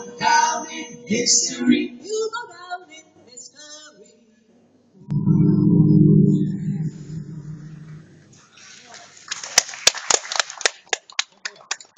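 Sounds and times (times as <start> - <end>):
audience applauding: 8.8 - 11.9.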